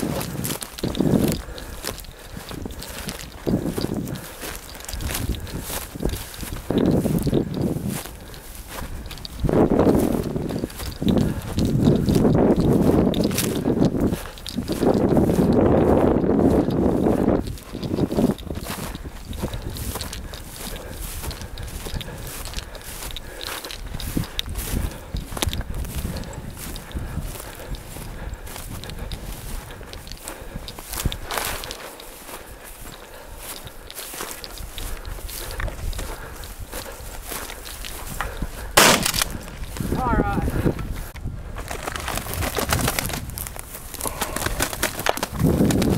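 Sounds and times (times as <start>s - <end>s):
footsteps crunching: 0.0s - 45.9s
sharp loud crack: 38.8s - 39.3s.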